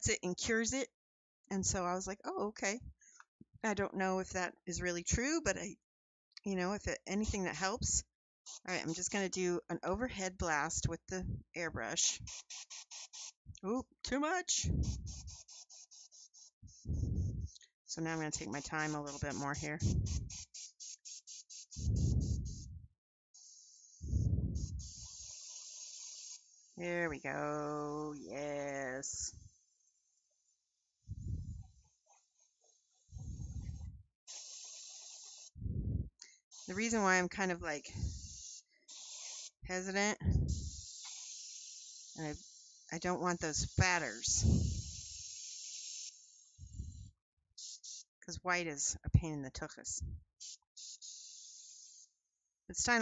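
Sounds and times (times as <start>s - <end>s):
airbrush spraying paint: 8.5s - 9.3s, 12.0s - 13.5s, 14.5s - 22.8s, 23.4s - 27.3s, 29.4s - 32.1s, 32.7s - 35.6s, 36.3s - 48.2s, 50.3s - 53.0s
high hiss of air: 19.8s - 22.6s, 24.6s - 26.8s, 33.2s - 35.6s, 38.0s - 39.6s, 40.5s - 42.9s, 44.4s - 46.6s.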